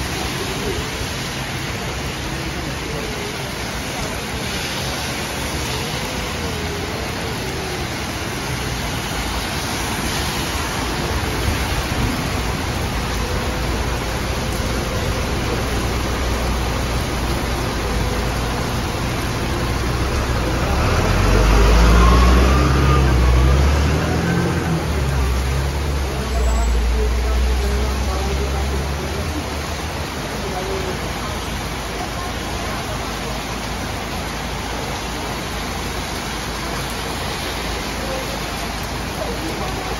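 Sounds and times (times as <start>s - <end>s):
bus engine rumble: 0.0s - 39.9s
heavy rain pouring: 0.0s - 39.9s
tyre hiss of passing traffic: 0.0s - 39.9s.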